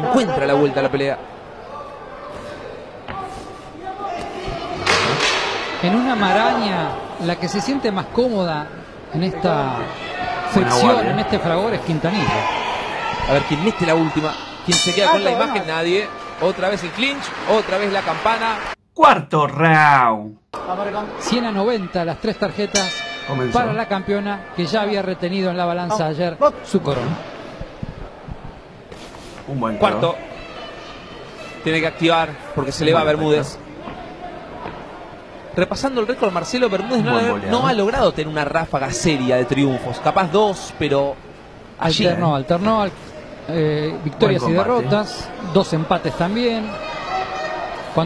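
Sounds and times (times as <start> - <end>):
faint crowd shouting: 9.5 - 17.3, 44.3 - 48.0.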